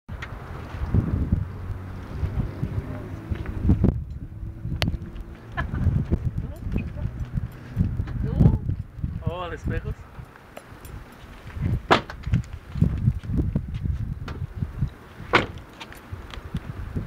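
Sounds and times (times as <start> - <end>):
low rumble on microphone: 0.1 - 17.0.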